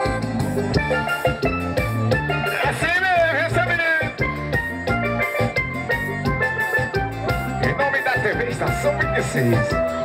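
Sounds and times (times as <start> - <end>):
drum and bass beat: 0.0 - 10.0
keyboard melody: 0.0 - 10.0.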